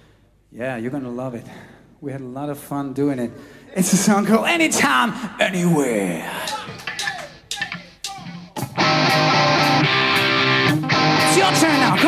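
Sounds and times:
person calling out: 5.7s - 8.6s
hard rock band playing: 6.5s - 12.0s.

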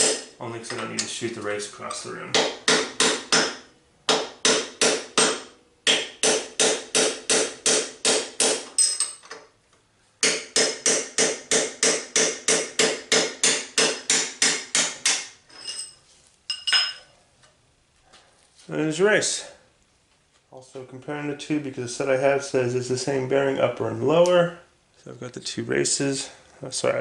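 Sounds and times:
hammer tapping metal punch: 10.2s - 15.3s
faint metal clinks: 15.5s - 17.2s.

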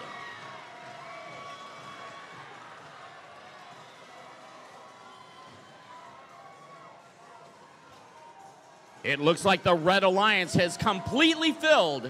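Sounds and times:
crowd cheering and calling out: 0.0s - 12.0s.

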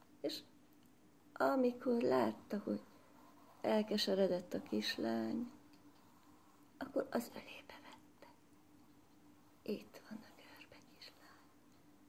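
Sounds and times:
faint steady hum: 0.0s - 12.0s
woman whispering: 6.8s - 8.4s, 9.6s - 11.6s.

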